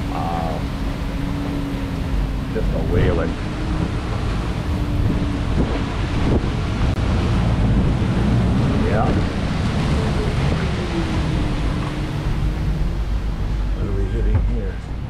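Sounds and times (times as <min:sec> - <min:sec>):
driving rain: 0:00.0 - 0:15.0
storm wind gusting on microphone: 0:00.0 - 0:15.0.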